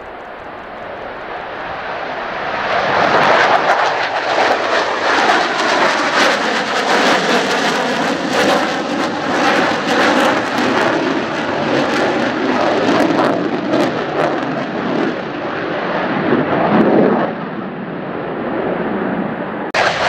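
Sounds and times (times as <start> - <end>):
jet engines roaring: 0.0 - 20.0.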